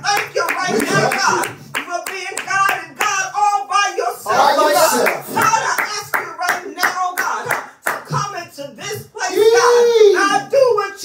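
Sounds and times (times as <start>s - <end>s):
steady hand clapping: 0.0s - 3.3s, 4.8s - 8.4s.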